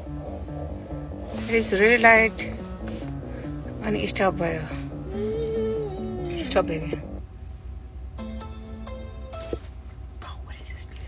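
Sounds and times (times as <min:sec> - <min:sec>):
steady low rumble: 0:00.0 - 0:11.0
sliding voice: 0:01.3 - 0:02.6.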